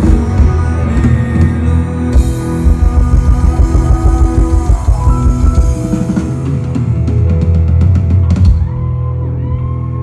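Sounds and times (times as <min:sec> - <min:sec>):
rock band playing loudly: 0:00.0 - 0:10.0.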